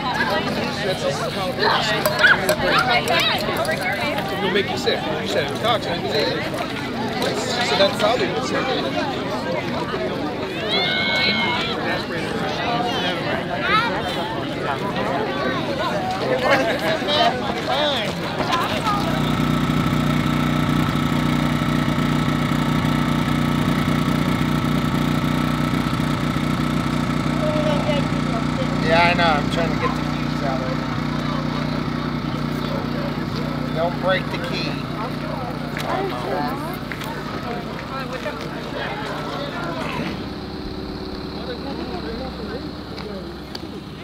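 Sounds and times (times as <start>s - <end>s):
scattered voices: 0.0s - 44.0s
vehicle engine idling: 17.5s - 44.0s.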